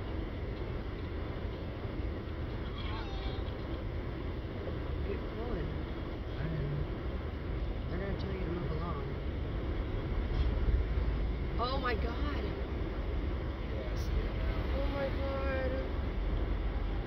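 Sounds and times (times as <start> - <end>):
traffic rumble inside car: 0.0 - 17.0.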